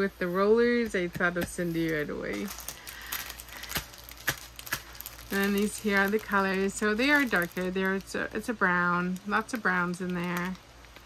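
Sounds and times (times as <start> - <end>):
plastic packaging rustling: 0.8 - 11.0.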